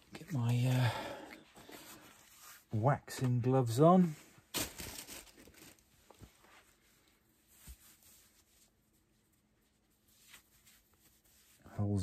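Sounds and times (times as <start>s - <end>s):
fabric rustling: 4.0s - 11.7s.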